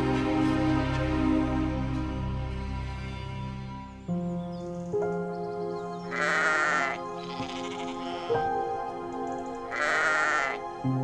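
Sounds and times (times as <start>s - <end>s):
soft background music: 0.0s - 11.0s
sheep bleating: 6.1s - 8.4s, 9.7s - 10.6s.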